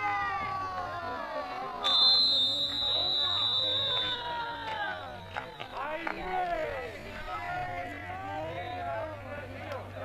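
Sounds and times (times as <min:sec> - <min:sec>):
referee's whistle blast: 0:01.8 - 0:05.8.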